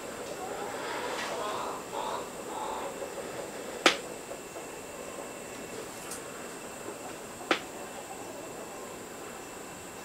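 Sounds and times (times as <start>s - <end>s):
background hiss: 0.0s - 10.0s
faint high whine: 0.0s - 10.0s.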